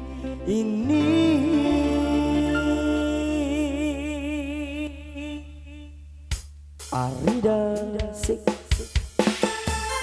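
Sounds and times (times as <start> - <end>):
man singing with vibrato: 0.0 - 6.0, 6.9 - 9.0.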